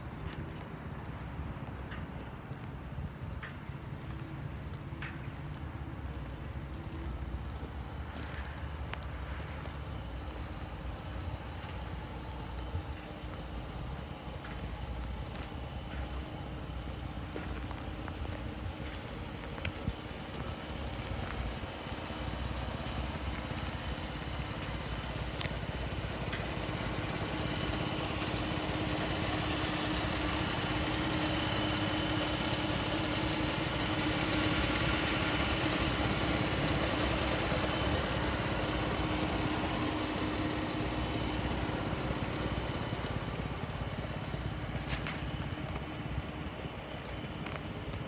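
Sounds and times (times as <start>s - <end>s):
car engine idling: 0.0s - 48.0s.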